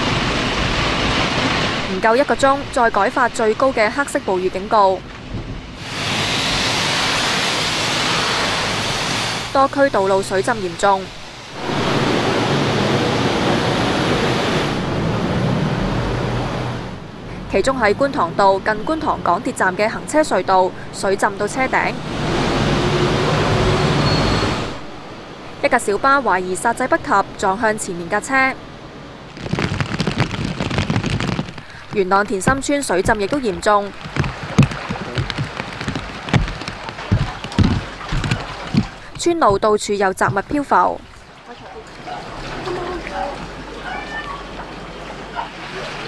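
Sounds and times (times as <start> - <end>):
rain falling on water: 0.0 - 46.0
rushing floodwater: 0.0 - 46.0.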